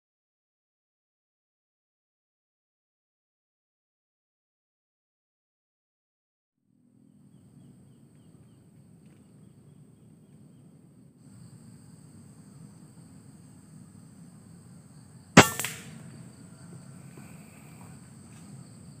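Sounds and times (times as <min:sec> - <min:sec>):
air rifle shot: 0:15.4 - 0:16.3.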